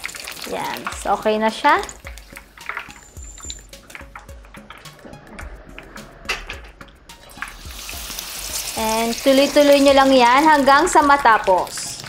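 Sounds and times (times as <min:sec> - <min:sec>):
utensils clicking against wok: 0:00.0 - 0:05.0, 0:09.2 - 0:12.0
oil sizzling: 0:00.0 - 0:12.0.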